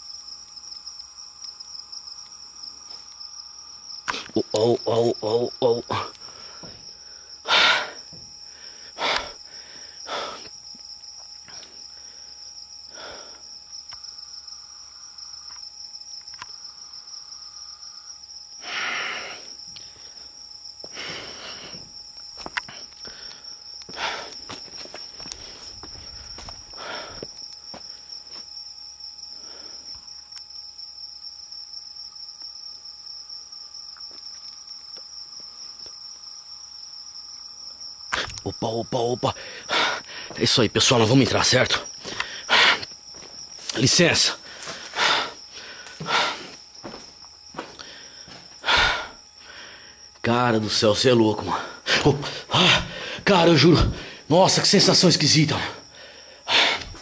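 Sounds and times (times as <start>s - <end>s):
crickets trilling: 0.0s - 57.0s.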